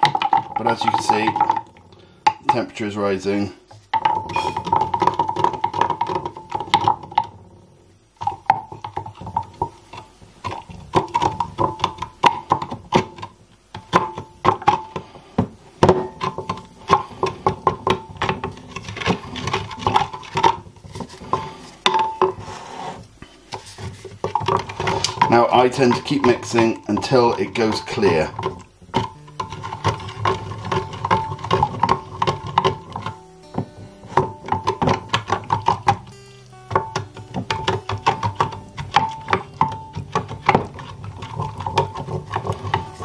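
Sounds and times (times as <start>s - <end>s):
spoon knocking glass jug: 0.0s - 2.6s, 3.9s - 7.4s, 8.2s - 15.0s, 15.8s - 20.7s, 21.3s - 22.4s, 24.2s - 43.0s.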